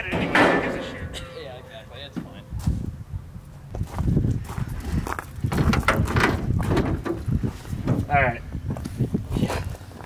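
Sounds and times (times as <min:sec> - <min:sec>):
footsteps crunching on gravel: 0:03.7 - 0:05.8.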